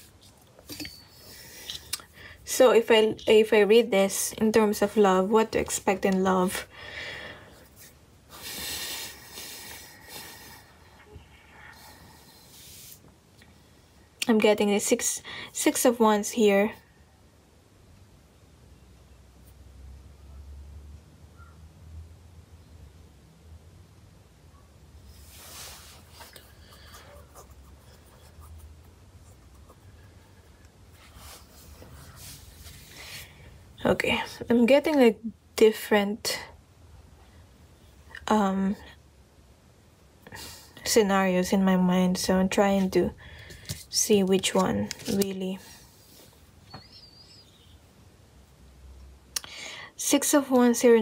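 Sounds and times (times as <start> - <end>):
soft hissing breaths: 6.7 - 14.2, 24.9 - 28.3, 29.8 - 34.4
faint rustling and scraping: 25.0 - 33.6, 42.7 - 47.5.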